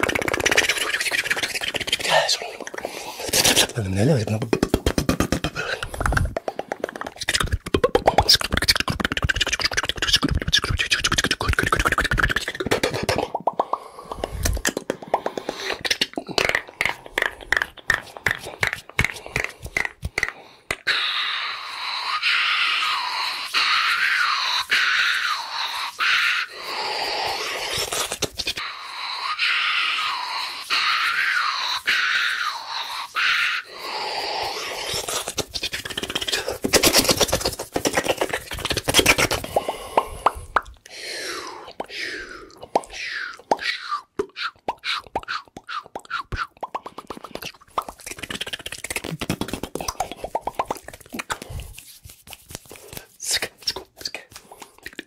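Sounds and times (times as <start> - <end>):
sharp mouth clicks: 0.0 - 21.2, 24.0 - 28.7, 30.3 - 55.0
hissing rubbing noise: 22.8 - 28.7, 30.0 - 40.0.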